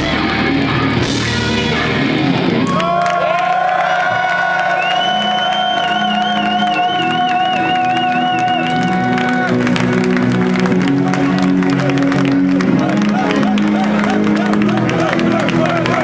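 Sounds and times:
crowd cheering and clapping: 0.0 - 16.0.

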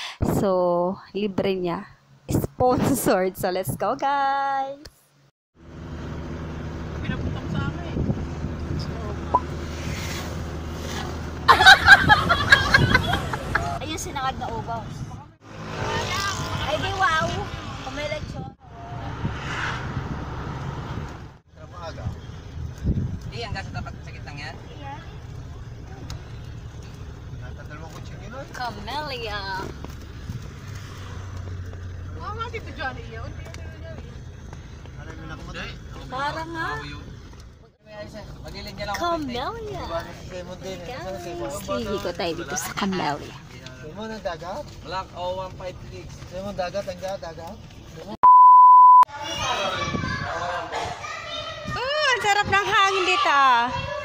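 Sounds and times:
van engine and road rumble: 0.0 - 48.2, 49.1 - 54.0
children talking and shouting: 11.6 - 18.6, 49.1 - 54.0
single-pitch bleep tone: 48.2 - 49.1.

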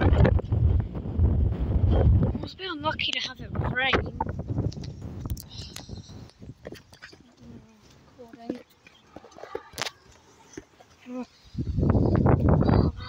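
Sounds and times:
knocks and rustles of handheld camera: 3.0 - 11.1.

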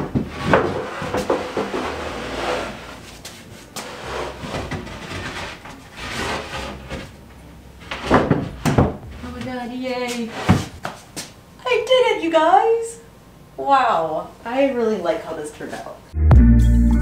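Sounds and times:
wooden board knocking and scraping: 0.0 - 7.2, 7.8 - 9.6.

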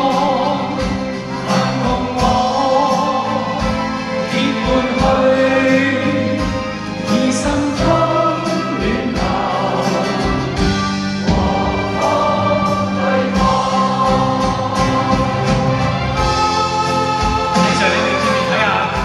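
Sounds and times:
group singing: 0.0 - 19.0
live band with drumbeat: 0.0 - 19.0.

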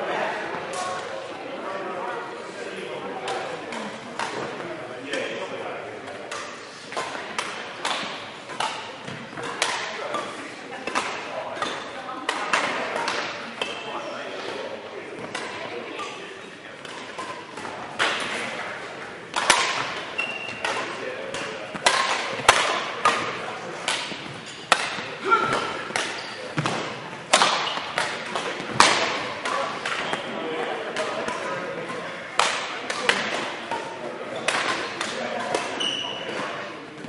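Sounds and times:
rackets hitting shuttlecock: 3.2 - 5.4, 6.1 - 37.0
shoes squeaking on court: 19.9 - 20.9, 24.1 - 27.0, 30.0 - 30.4, 35.7 - 36.6.

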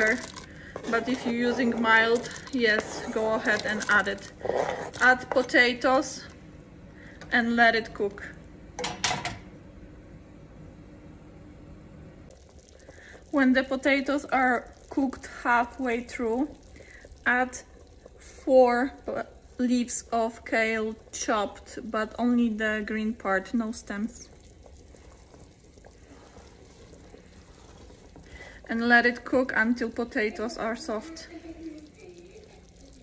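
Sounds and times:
spatula stirring liquid: 0.0 - 6.2, 12.3 - 33.0
soup simmering and bubbling: 0.0 - 8.8, 12.3 - 33.0.

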